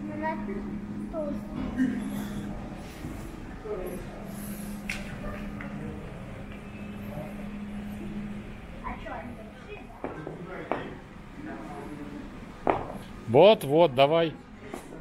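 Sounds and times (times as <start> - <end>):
faint people's voices: 0.0 - 13.4
steady low hum: 0.0 - 15.0.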